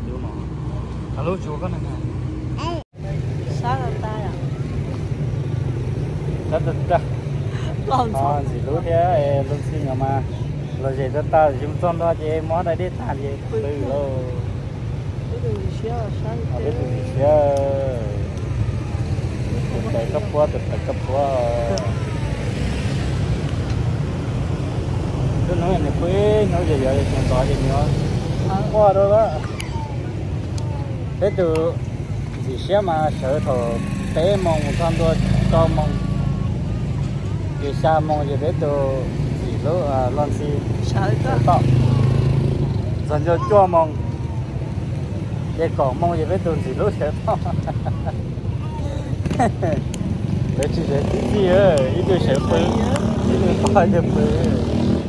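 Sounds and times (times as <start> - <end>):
road traffic hum: 0.0 - 55.0
people talking: 7.9 - 10.3, 50.6 - 54.9
vehicle engine passing: 16.4 - 29.4, 31.6 - 44.0, 49.1 - 55.0.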